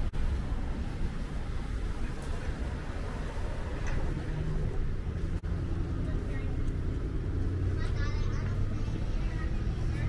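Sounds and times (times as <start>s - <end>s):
idling and passing cars: 0.0s - 10.0s.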